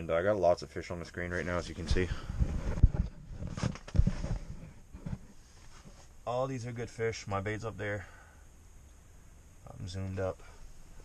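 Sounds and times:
fabric rubbing on microphone: 1.3 - 6.2.

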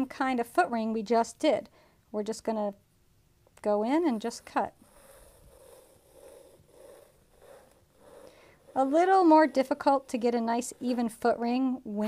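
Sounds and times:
needle tool scraping clay: 4.0 - 11.5.

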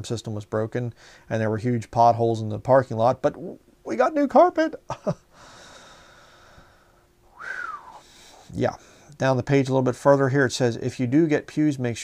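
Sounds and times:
man breathing out: 5.3 - 9.1
falling high whistling tone: 7.3 - 8.0.

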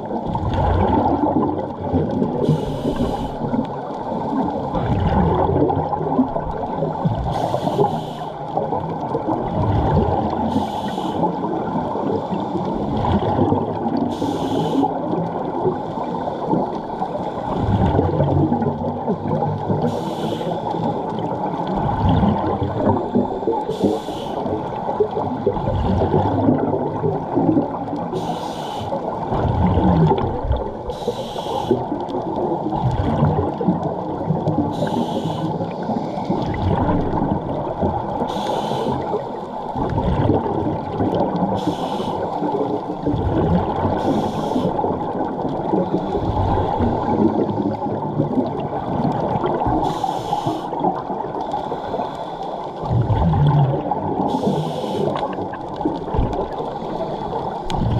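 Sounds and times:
gurgle of exhaled bubbles: 0.0 - 57.9
steady underwater rush: 0.0 - 57.9
regulator inhale hiss: 2.4 - 3.5, 7.3 - 8.5, 10.5 - 11.4, 14.1 - 15.0, 19.8 - 21.0, 23.4 - 24.5, 28.1 - 29.1, 30.9 - 31.9, 34.7 - 36.4, 38.2 - 39.4, 41.6 - 42.4, 44.0 - 44.8, 49.8 - 50.9, 51.5 - 52.8, 54.3 - 55.3.

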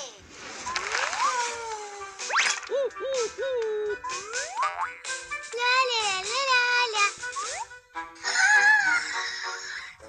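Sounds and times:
playful cartoon music: 0.5 - 10.0.

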